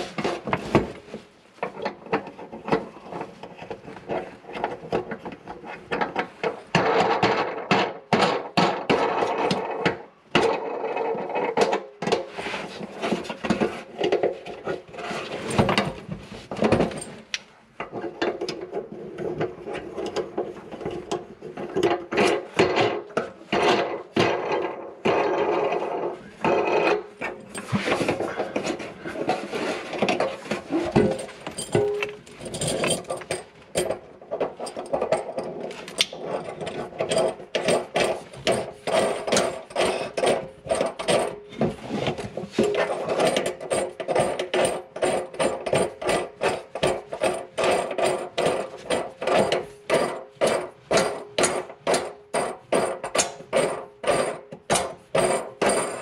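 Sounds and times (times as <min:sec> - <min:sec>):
hand tool scraping and ratcheting: 0:00.0 - 0:56.0.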